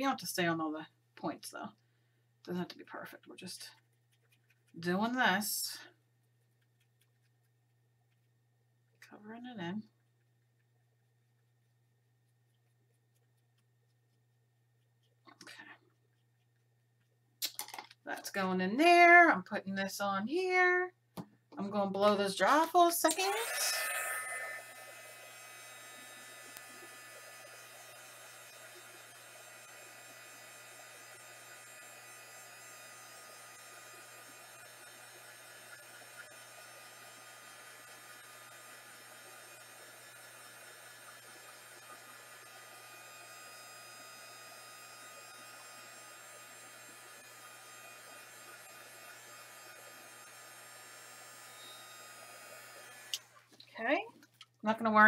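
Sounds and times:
heat gun blowing hot air: 23.1 - 53.4.

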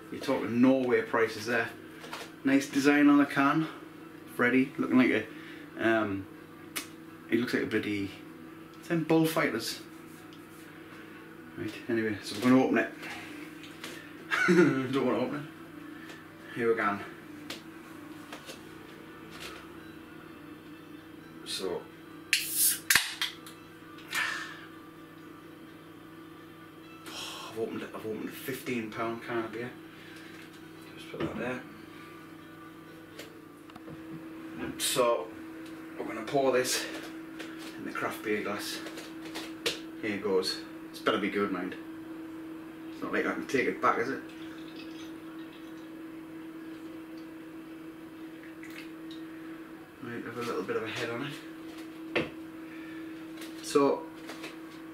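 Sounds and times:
steady low hum: 0.0 - 54.9
beer pouring into a glass: 44.2 - 46.0
liquid fizzing: 44.3 - 45.8
faint drips: 48.3 - 49.3.

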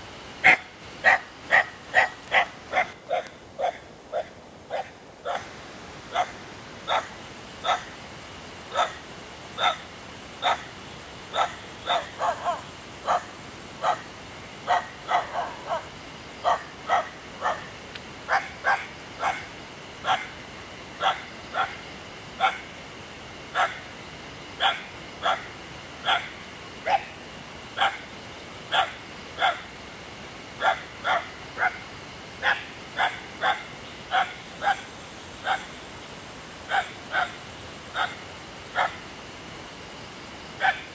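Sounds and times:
faint high whine: 0.0 - 40.9.

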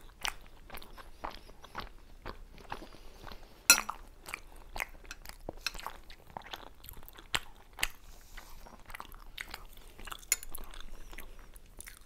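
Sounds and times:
chewing mouth clicks and smacks: 0.0 - 12.0.

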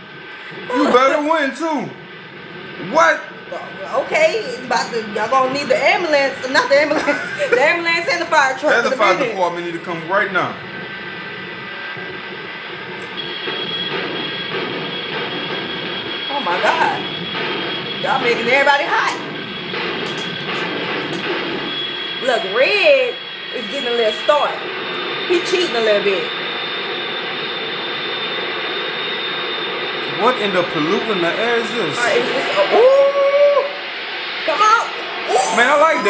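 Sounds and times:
jet engines rushing: 0.0 - 36.0
steady high whine: 0.0 - 36.0.

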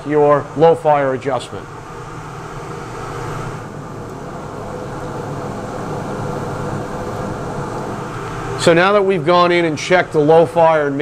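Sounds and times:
gas boiler burner rushing: 0.0 - 11.0.

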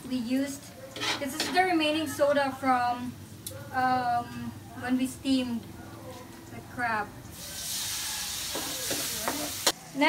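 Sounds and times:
liquid sizzling in hot wok: 7.3 - 10.0.

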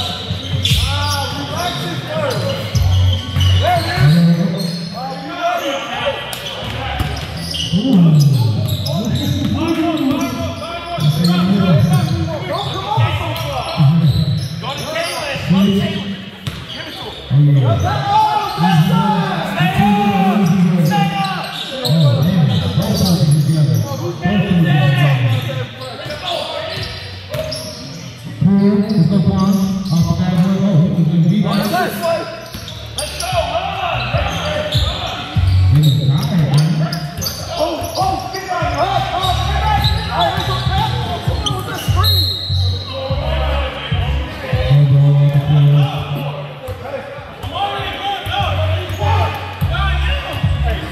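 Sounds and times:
basketball bouncing on court: 16.4 - 16.7
loud shout: 17.8 - 21.5
voices calling out: 31.5 - 50.9.

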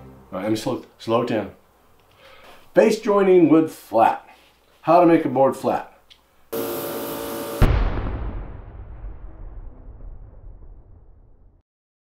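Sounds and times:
loud buzzy tone: 6.5 - 7.8
deep boom ringing: 7.6 - 11.6.

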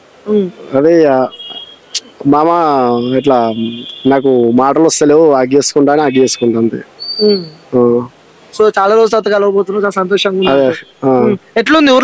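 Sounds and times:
man making hesitation sounds: 0.3 - 8.1, 9.1 - 11.8
night insects trilling: 0.7 - 6.4.

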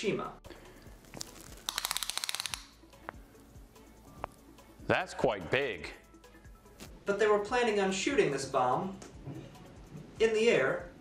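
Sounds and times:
faint background music: 0.0 - 11.0.

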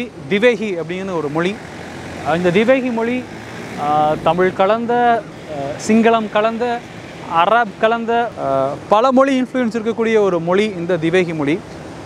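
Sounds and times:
man talking: 0.0 - 11.7.

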